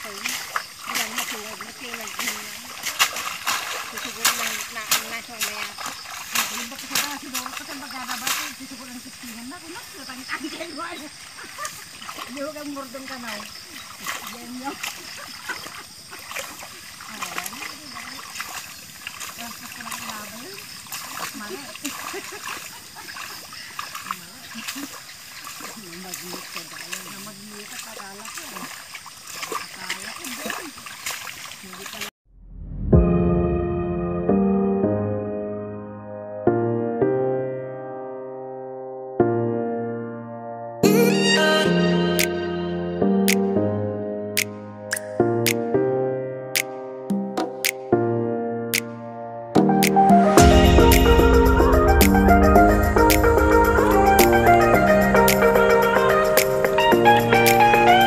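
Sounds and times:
splashing of muddy water: 0.0s - 32.2s, 49.6s - 58.0s
indistinct voices talking: 50.4s - 58.0s.

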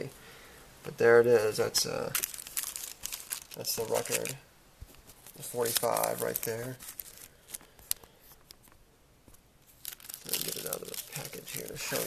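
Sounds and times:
plastic sleeve rustling: 1.4s - 8.8s, 9.6s - 12.0s.

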